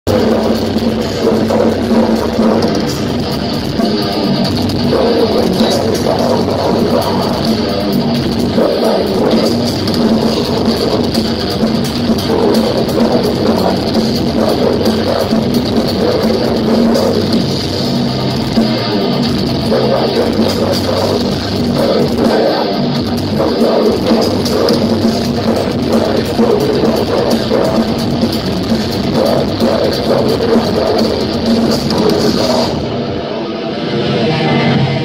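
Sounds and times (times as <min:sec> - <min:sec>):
death metal band playing live: 0:00.0 - 0:35.0
drums: 0:00.0 - 0:35.0
heavy distorted guitars: 0:00.0 - 0:35.0.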